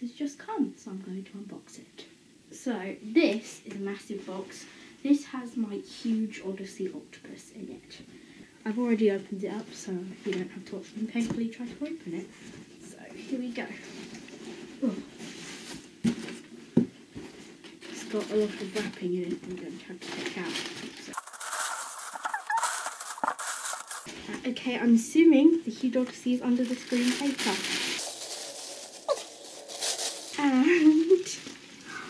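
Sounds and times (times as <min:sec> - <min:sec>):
paper rustling and crinkling: 0:17.2 - 0:24.2, 0:26.5 - 0:31.9
cardboard flaps scraping and rustling: 0:20.1 - 0:24.2.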